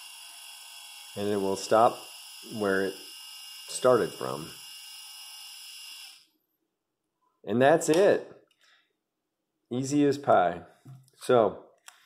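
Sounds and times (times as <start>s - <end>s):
small motor whining: 0.0s - 6.3s.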